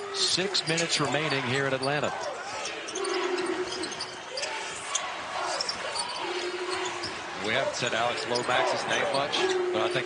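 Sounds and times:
crowd murmur: 2.1s - 10.0s.

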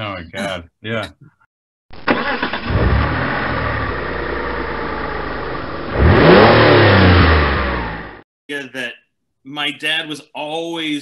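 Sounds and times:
car engine revving: 2.1s - 8.2s.

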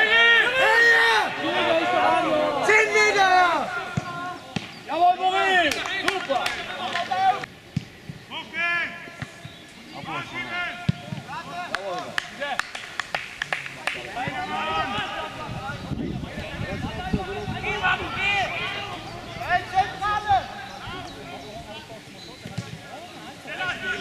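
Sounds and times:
footballers shouting: 0.0s - 7.5s, 8.2s - 12.6s, 13.6s - 24.0s.

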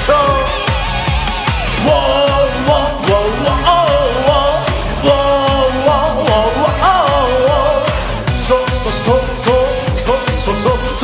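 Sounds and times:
man singing loudly: 0.0s - 11.0s
rock backing track with drum beat: 0.0s - 11.0s.

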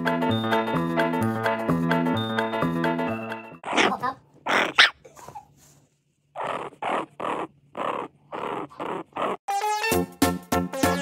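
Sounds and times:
puppy grunting: 3.6s - 5.6s, 6.3s - 9.4s.

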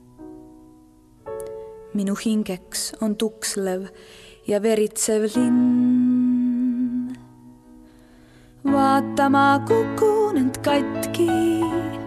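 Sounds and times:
soft instrumental accompaniment: 0.0s - 12.0s.

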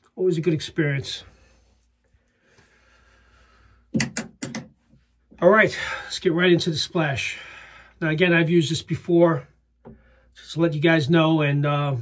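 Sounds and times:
small objects clicking on desk: 4.0s - 4.8s.

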